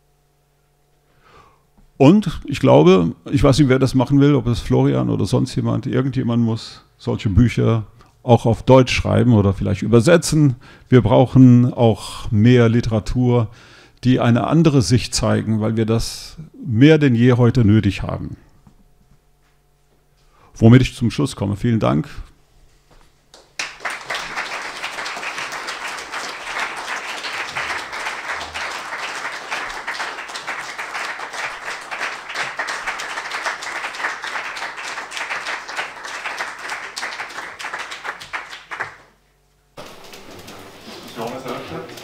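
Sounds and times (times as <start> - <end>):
audience applauding: 23.3 - 39.2, 39.8 - 42.0.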